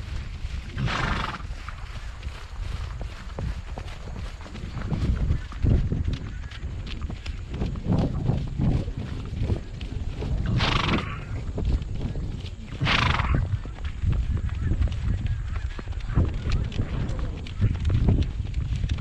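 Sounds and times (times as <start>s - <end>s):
horse hoofbeats on dirt: 0.0s - 19.0s
wind rumble on microphone: 0.0s - 19.0s
horse snorting blasts: 0.8s - 1.4s, 10.5s - 11.3s, 12.8s - 13.4s.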